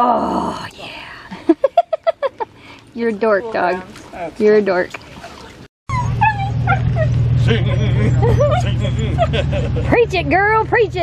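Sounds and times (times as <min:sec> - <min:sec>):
dog whining woo-calls: 0:05.9 - 0:08.6
steady low rumble: 0:05.9 - 0:11.0.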